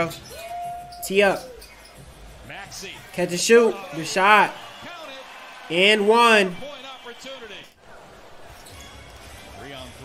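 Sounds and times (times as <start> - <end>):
commentator speaking: 3.2 - 4.6, 5.7 - 6.8.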